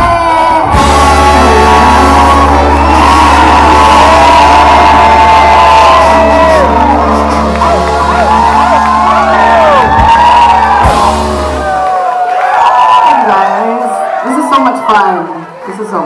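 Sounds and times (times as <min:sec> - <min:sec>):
loud music with deep bass: 0:00.0 - 0:12.2
people whooping and shouting: 0:00.0 - 0:16.0.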